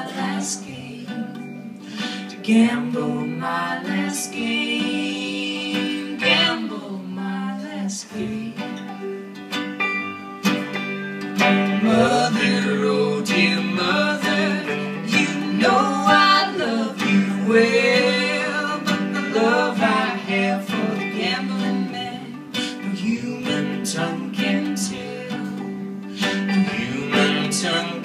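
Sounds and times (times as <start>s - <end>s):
acoustic country music: 0.0s - 28.0s.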